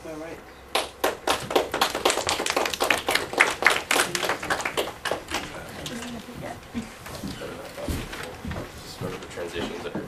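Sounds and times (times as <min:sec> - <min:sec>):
small group clapping: 0:00.7 - 0:06.3.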